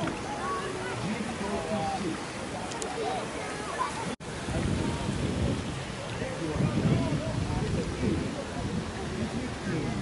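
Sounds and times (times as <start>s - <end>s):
faint voices: 0.0s - 10.0s
wind buffeting microphone: 0.0s - 10.0s.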